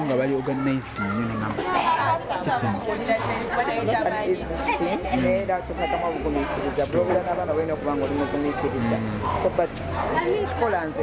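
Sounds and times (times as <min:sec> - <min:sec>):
background chatter: 0:00.0 - 0:11.0
music: 0:00.0 - 0:11.0.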